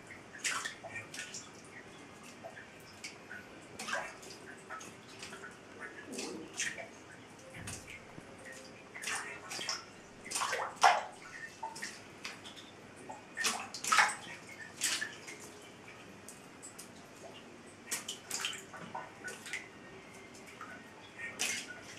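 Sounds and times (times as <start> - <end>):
water splashing and dripping: 0.0 - 21.9.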